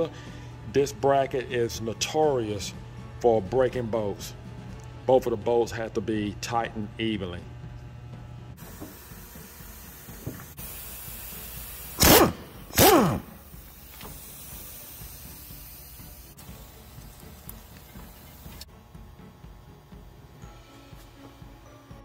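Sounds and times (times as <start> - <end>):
pneumatic impact wrench bursts: 8.6 - 16.8.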